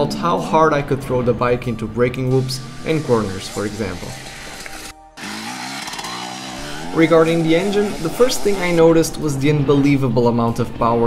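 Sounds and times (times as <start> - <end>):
two-stroke engine revving: 2.3 - 9.4.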